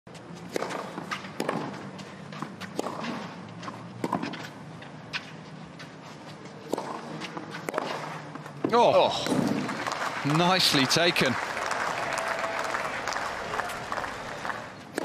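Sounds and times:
racket striking ball: 0.4 - 5.4, 6.6 - 9.7
ball bouncing: 0.5 - 4.5.

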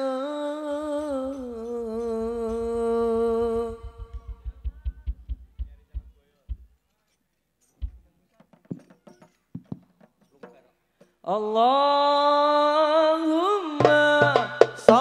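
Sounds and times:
man singing a long note: 0.0 - 5.0
fast low drumbeats: 1.0 - 6.8, 7.8 - 8.1.

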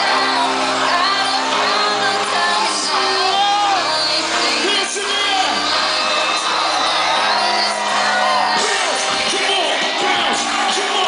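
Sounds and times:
crowd cheering and whooping: 0.0 - 11.0
live concert music over pa: 0.0 - 11.0.

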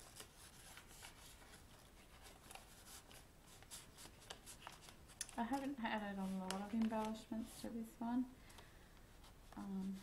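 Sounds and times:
faint paper rustling: 0.0 - 10.0.

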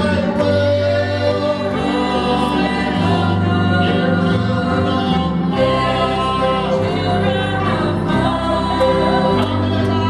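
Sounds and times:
woman and man singing gospel: 0.0 - 10.0.

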